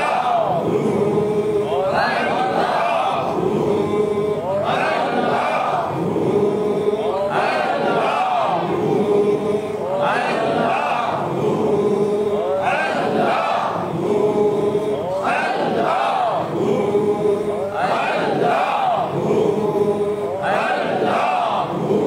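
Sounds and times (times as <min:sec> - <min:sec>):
voices chanting a phrase: 0:00.0 - 0:22.0.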